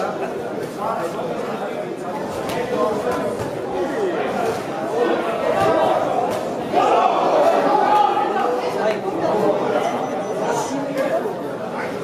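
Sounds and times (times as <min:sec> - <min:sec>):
spectators chattering and calling: 0:00.0 - 0:12.0.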